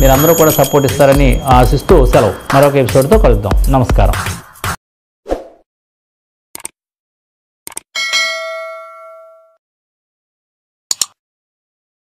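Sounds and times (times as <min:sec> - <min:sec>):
notification bell ding: 0:00.0 - 0:03.0, 0:08.0 - 0:09.6.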